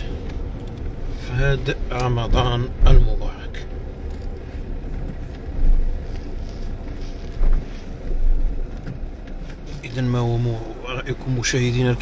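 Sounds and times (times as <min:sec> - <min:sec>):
car driving low rumble: 0:00.0 - 0:12.0.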